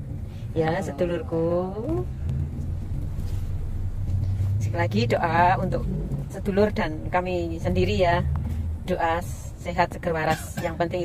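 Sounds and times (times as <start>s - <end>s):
car engine rumble: 0.0s - 11.0s
road noise: 0.0s - 11.0s.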